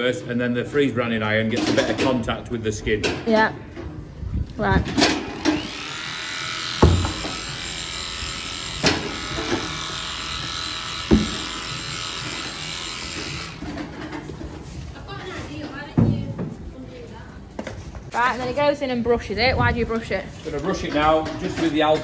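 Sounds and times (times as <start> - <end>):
electric clippers buzzing: 4.9 - 14.3.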